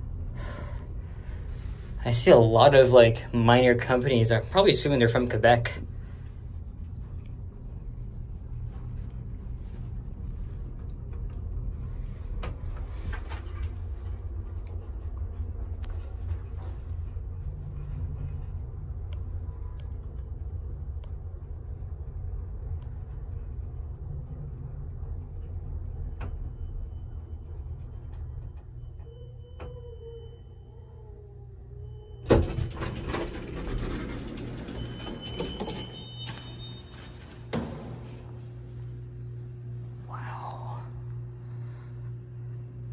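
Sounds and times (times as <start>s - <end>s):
elevator cab rumbling: 0.0s - 39.7s
faint high tone: 28.8s - 32.3s
elevator car thump: 32.2s - 38.5s
elevator doors rattling and sliding: 32.2s - 38.5s.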